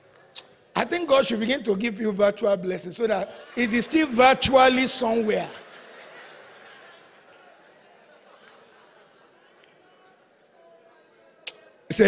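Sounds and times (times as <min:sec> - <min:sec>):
man speaking: 0:00.7 - 0:05.6.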